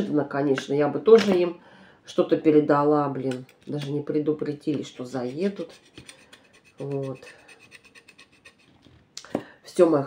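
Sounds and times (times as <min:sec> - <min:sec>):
woman speaking: 0:00.0 - 0:05.8, 0:06.8 - 0:07.4, 0:09.3 - 0:10.0.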